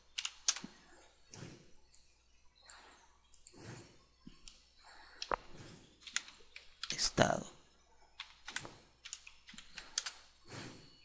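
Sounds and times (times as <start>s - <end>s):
typing on computer keyboard: 8.2s - 10.2s.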